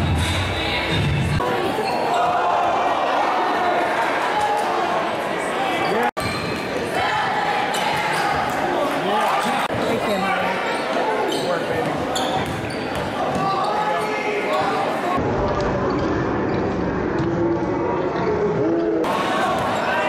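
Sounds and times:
indistinct shouts and chatter: 0.3s - 20.0s.

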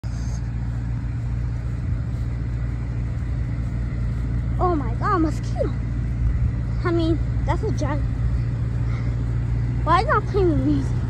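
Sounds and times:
truck engine low hum: 0.0s - 11.0s.

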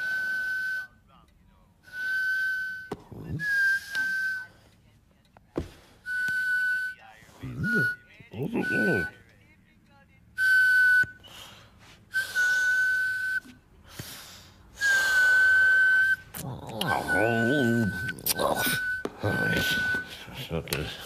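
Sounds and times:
breathy high whistle: 0.0s - 1.0s, 1.8s - 4.8s, 5.6s - 9.2s, 10.4s - 20.4s
wavering vocal murmur: 7.3s - 9.2s, 16.2s - 21.0s.

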